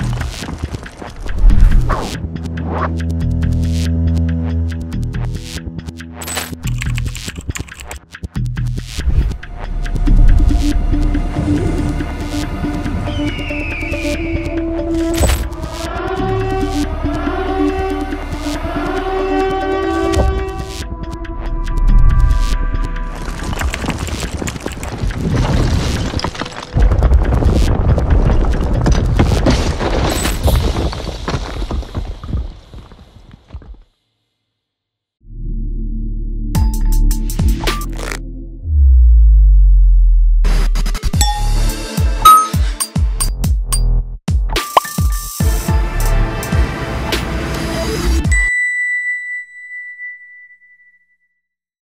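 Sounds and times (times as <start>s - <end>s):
electronic music: 1.3s - 23.1s, 40.8s - 45.8s
building collapse rumble: 23.0s - 33.6s
demolition charges crackling: 23.0s - 33.6s
bright chime ringing: 41.2s - 42.9s.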